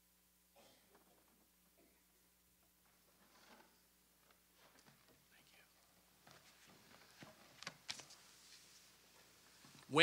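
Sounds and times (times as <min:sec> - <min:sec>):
soft whispered voice: 0:05.2 - 0:06.0.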